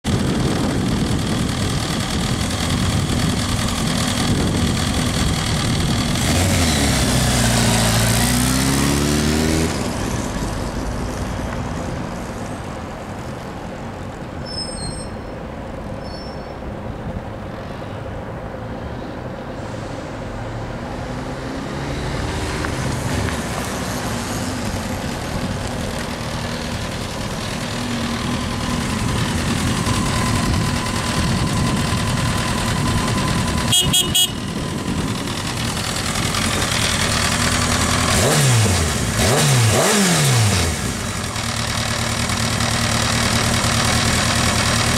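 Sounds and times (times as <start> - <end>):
motorcycle engine revving: 0.1 - 10.9, 21.1 - 44.9.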